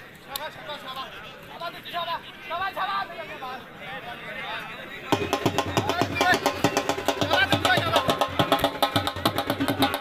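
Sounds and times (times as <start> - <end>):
dhol drum beating fast: 5.1 - 10.0.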